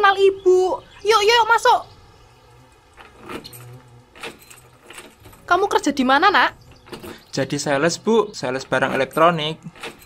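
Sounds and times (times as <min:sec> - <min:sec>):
door handle and lock rattling: 0:02.7 - 0:07.5, 0:08.6 - 0:10.0.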